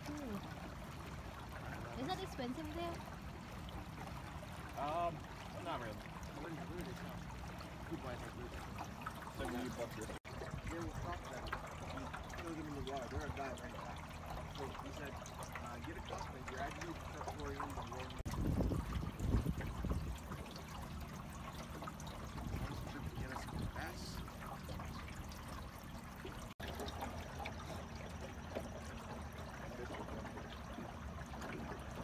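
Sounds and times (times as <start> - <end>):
water lapping around boat: 0.0 - 32.0
wind rumble on microphone: 18.2 - 20.6, 22.2 - 24.8.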